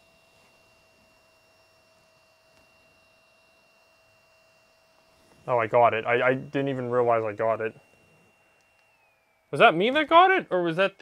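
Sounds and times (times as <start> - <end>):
two-note whine: 0.0 - 11.0.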